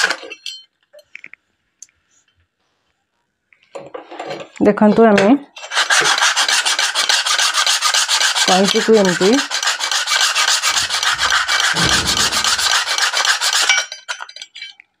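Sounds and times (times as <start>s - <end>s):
scissors blade rasping on sandpaper: 5.6s - 11.7s.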